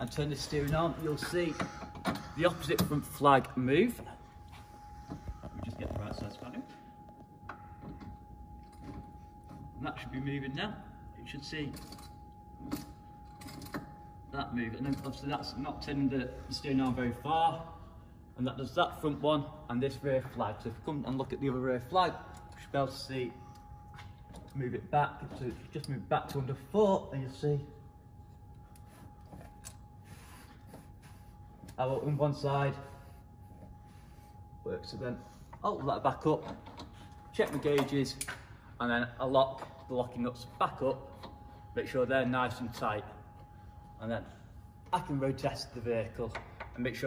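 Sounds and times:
faint steady high tone: 0.0s - 47.0s
faint steady hum: 0.0s - 47.0s.

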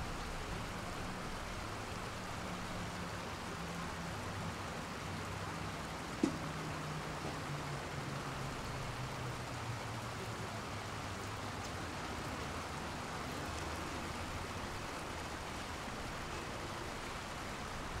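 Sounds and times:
low traffic hum: 0.0s - 18.0s
rushing stream water: 0.0s - 18.0s.

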